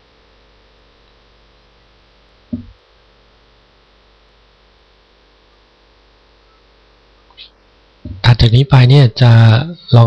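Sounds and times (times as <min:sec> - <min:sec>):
faint mains hum: 0:00.0 - 0:10.0.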